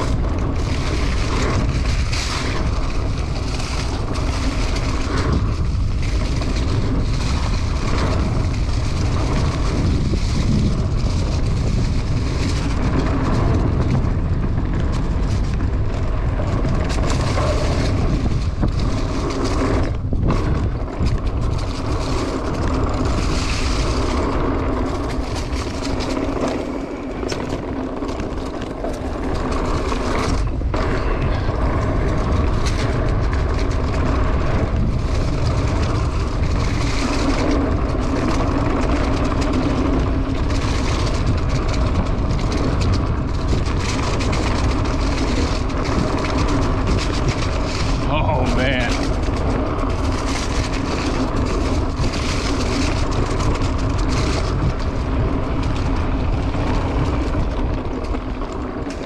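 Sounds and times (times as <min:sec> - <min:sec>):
bike rattling over bumps: 0:00.0 - 0:59.0
tyres rumbling on dirt: 0:00.0 - 0:59.0
wind rushing over microphone: 0:00.0 - 0:59.0.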